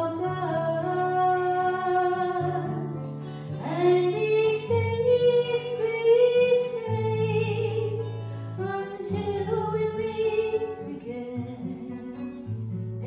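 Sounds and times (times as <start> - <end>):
woman singing: 0.0 - 12.5
acoustic guitar chords: 0.0 - 13.0.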